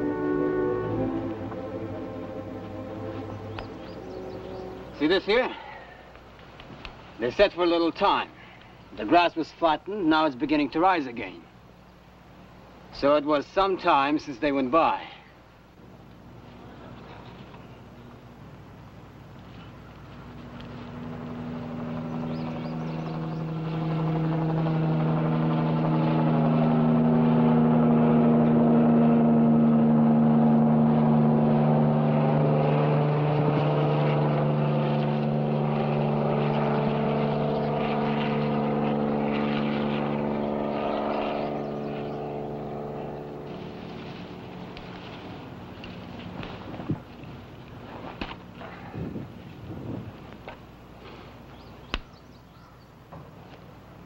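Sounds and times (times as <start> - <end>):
propeller aircraft engine drone: 0.0 - 54.0
rustling: 43.4 - 52.1.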